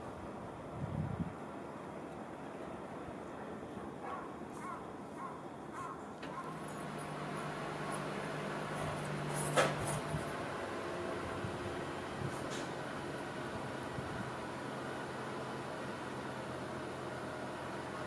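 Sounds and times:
distant electric train hum: 0.0s - 18.0s.

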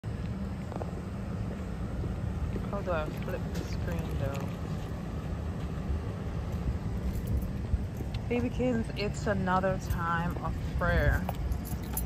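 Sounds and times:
street noise rumble: 0.0s - 12.0s.

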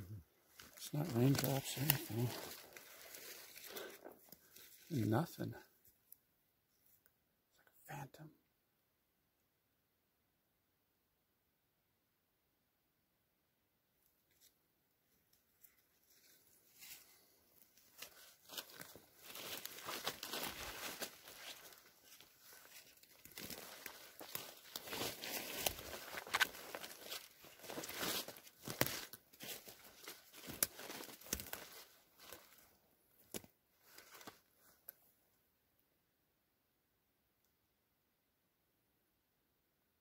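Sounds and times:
footsteps crunching through undergrowth: 0.4s - 5.0s, 15.6s - 34.8s.

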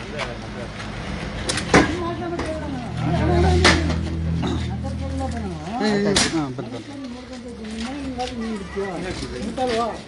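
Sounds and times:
voices talking: 0.0s - 10.0s.

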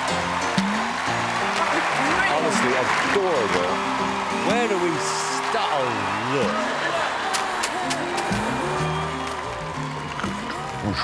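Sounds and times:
music with bass line: 0.0s - 1.6s.

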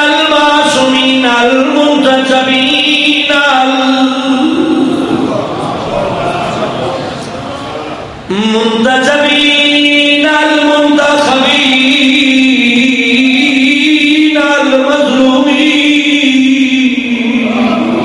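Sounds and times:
man chanting: 0.0s - 7.1s, 8.3s - 18.0s.

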